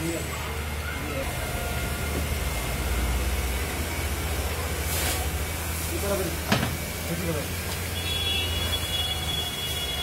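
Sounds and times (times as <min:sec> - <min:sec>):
motor running with hiss: 0:00.0 - 0:10.0.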